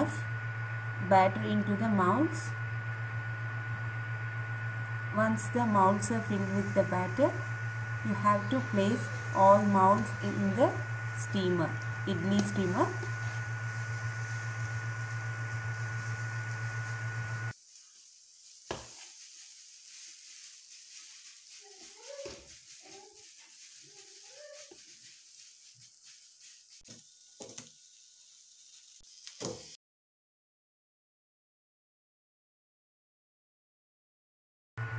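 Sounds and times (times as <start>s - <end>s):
low hum: 0.0s - 17.6s
thin high tone: 5.2s - 17.9s.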